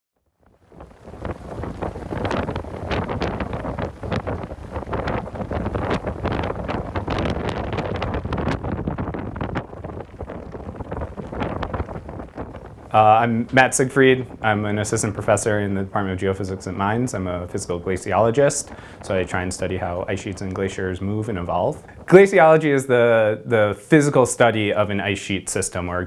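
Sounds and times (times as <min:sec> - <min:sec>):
wind buffeting microphone: 0:00.4 - 0:26.0.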